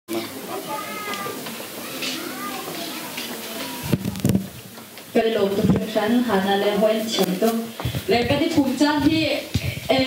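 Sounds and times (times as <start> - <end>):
people talking: 0.1 - 4.4, 5.2 - 10.0.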